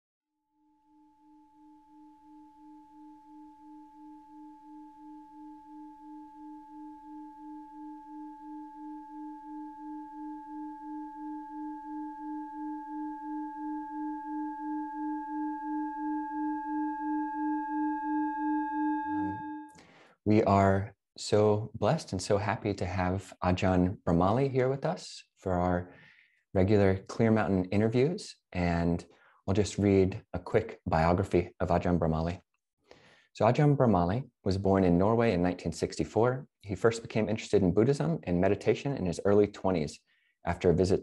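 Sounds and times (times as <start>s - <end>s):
singing bowl tone: 0.5s - 19.8s.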